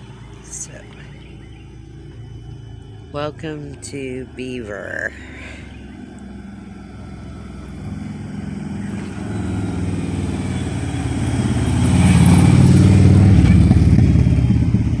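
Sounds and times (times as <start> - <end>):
motorcycle engine passing: 0.0 - 3.9, 4.7 - 15.0.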